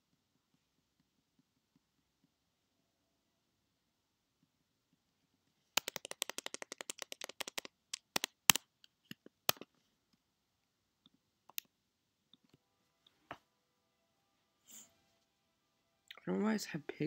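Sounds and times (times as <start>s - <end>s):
computer keyboard typing: 5.8s - 8.6s.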